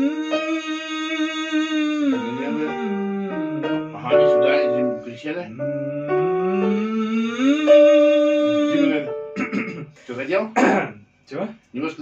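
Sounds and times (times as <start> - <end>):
electronic keyboard notes: 0.0 - 9.5
person clearing throat: 9.4 - 10.0, 10.6 - 11.0
person coughing: 9.4 - 11.0.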